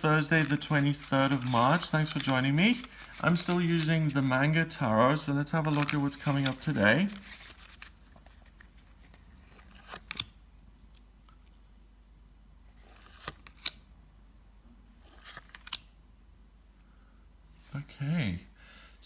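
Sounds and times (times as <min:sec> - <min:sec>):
cards rustling: 0:00.0 - 0:11.0, 0:12.8 - 0:13.8, 0:15.0 - 0:15.9.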